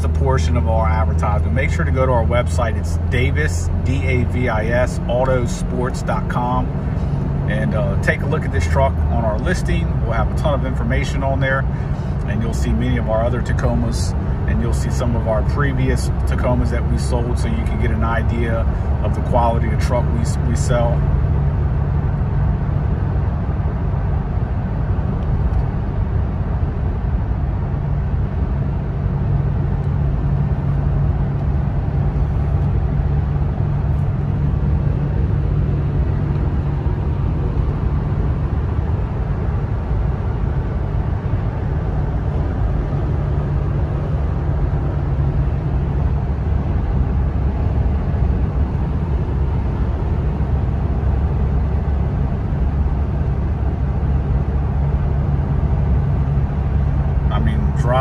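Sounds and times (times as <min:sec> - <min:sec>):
engine drone in car cabin: 0:00.0 - 0:58.0
road and tyre noise: 0:00.0 - 0:58.0.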